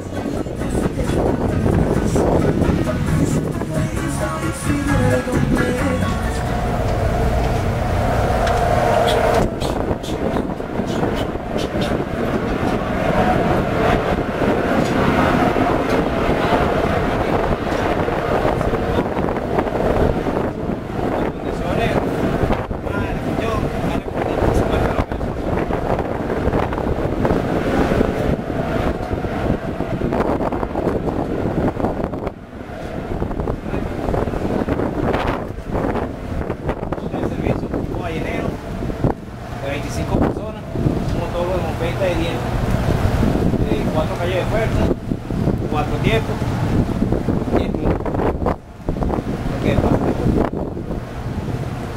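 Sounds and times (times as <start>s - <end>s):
music playing: 0.0s - 9.7s
indistinct voices: 0.0s - 19.4s
wind buffeting microphone: 0.0s - 51.9s.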